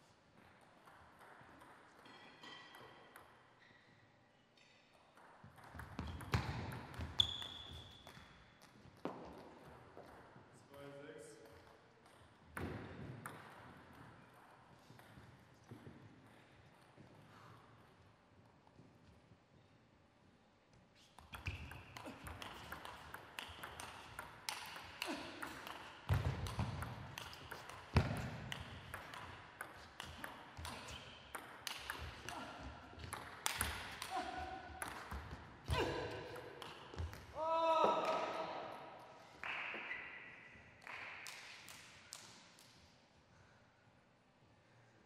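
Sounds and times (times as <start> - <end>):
table tennis ball clicking: 21.3 - 32.3
loud shout: 37.4 - 38.7.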